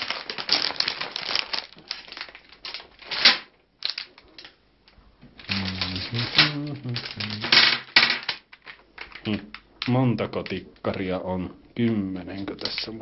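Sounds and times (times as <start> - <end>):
plastic bag rustling: 0.0 - 4.6, 5.3 - 9.6
person speaking: 5.3 - 7.9, 9.2 - 13.0.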